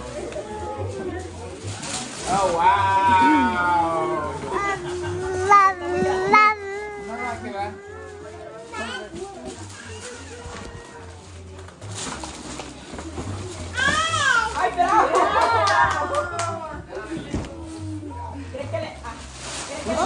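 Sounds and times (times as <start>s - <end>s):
children and adults chattering: 0.0s - 20.0s
music playing: 0.0s - 20.0s.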